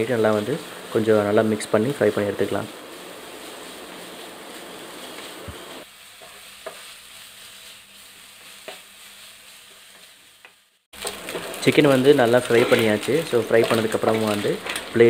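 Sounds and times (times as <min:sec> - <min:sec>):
chicken sizzling in pan: 0:00.0 - 0:15.0
spatula tapping pan: 0:06.2 - 0:06.9.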